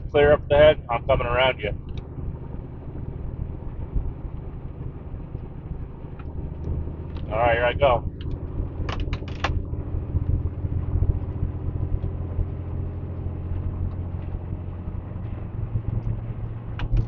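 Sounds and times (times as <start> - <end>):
truck diesel engine droning: 0.0 - 17.0.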